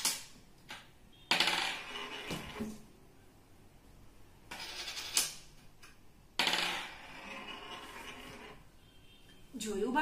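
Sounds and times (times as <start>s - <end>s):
coin rolling on wooden table: 0.0s - 2.8s, 4.5s - 5.5s, 6.4s - 8.6s.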